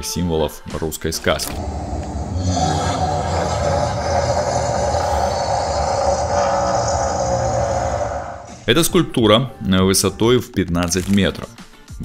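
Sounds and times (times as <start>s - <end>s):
roaring flame jets: 1.6s - 8.6s.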